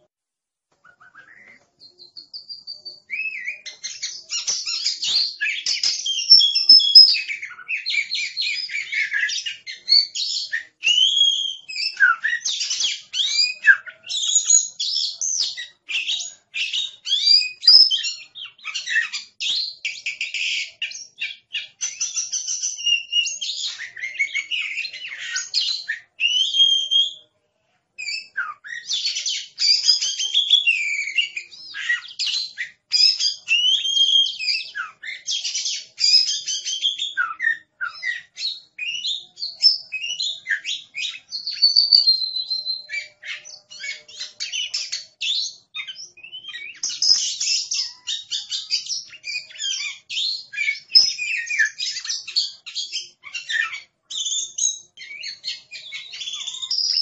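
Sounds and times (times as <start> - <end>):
bird singing: 0.8 - 27.3, 28.0 - 57.0.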